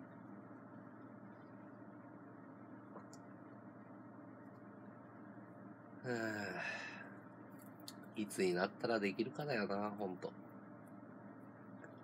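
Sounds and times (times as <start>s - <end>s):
man sighing: 6.0s - 7.2s.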